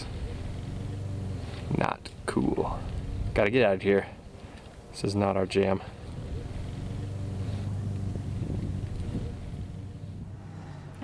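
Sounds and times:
pickup truck engine running: 0.0s - 11.0s.

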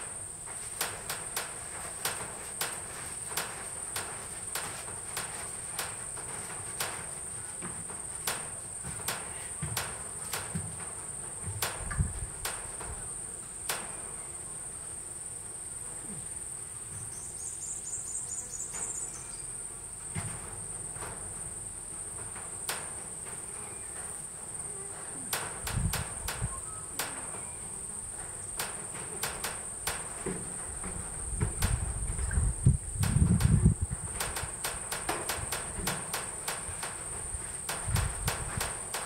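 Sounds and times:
high-pitched insect chirring: 25.7s - 28.6s
sharp clicks: 28.6s - 30.2s, 33.0s - 39.0s.

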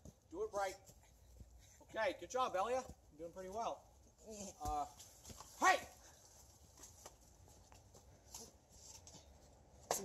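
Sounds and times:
man shouting: 5.6s - 6.0s.

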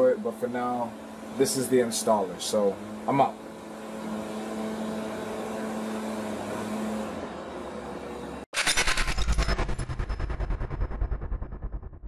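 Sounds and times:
bass-heavy electronic pulses: 8.6s - 12.0s.

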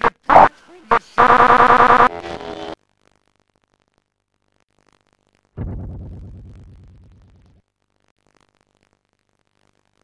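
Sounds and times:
distorted electronic buzzing: 0.0s - 10.0s.

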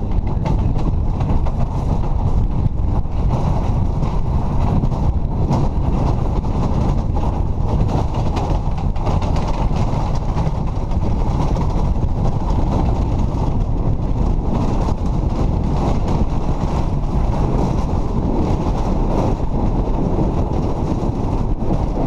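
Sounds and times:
sled runners rumbling on ice: 0.0s - 22.0s.

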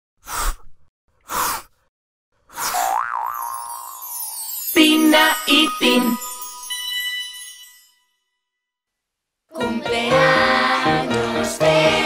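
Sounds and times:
wavering tone: 2.9s - 8.2s
falling shimmer: 3.4s - 8.2s.

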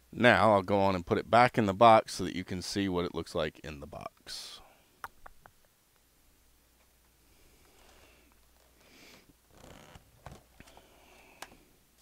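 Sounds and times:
soft rustling: 6.7s - 11.7s.

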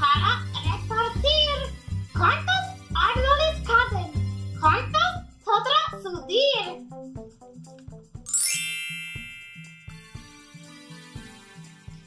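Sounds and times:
light background music: 0.0s - 12.0s
upward chime glissando: 8.3s - 10.3s.

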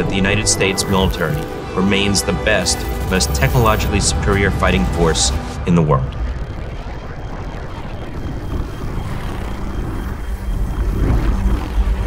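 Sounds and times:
deep rumble with rushing hiss: 0.0s - 12.0s.

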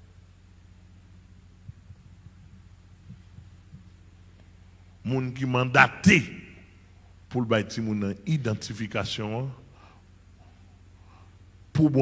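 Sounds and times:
electrical hum: 0.0s - 12.0s
faint soft low thumps: 1.6s - 4.1s.

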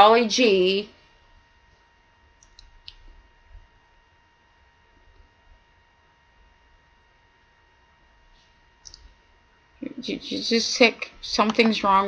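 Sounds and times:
faint steady hum: 0.0s - 12.0s
person speaking: 9.8s - 12.0s.

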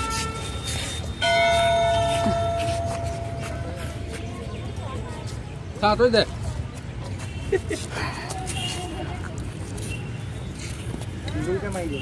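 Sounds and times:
temple bell ringing: 1.2s - 3.6s.

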